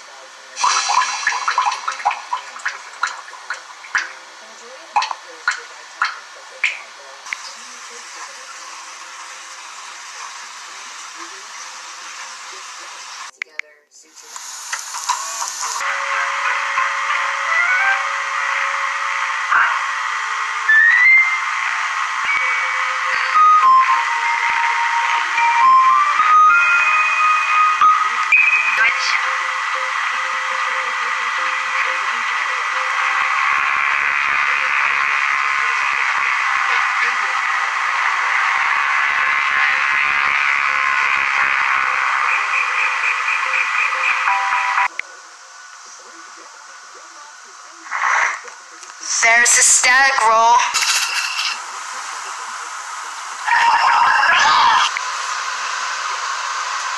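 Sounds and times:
tape hiss: 0.0 - 56.9.

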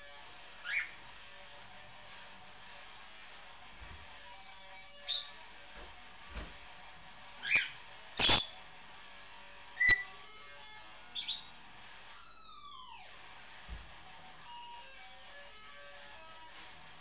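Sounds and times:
parrot whistles and squawks: 0.6 - 1.0, 5.0 - 5.4, 7.4 - 8.6, 9.8 - 10.1, 11.1 - 11.5.

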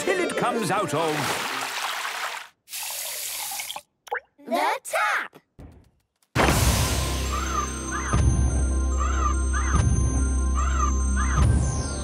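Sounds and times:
water gushing from tap: 1.1 - 3.9.

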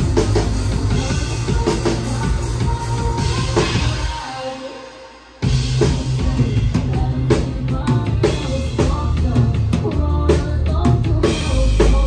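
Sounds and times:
bass drum and snare: 0.0 - 4.1, 5.5 - 12.0
live rock band playing: 0.0 - 12.0.

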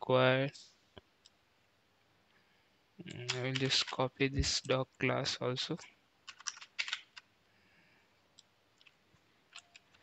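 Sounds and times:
computer keyboard keystrokes: 6.2 - 7.3, 8.8 - 10.0.

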